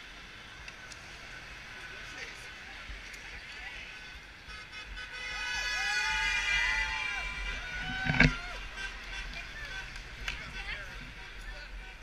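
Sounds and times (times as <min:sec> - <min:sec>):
people whooping: 0:05.4 - 0:08.8
car horn held: 0:07.5 - 0:08.4.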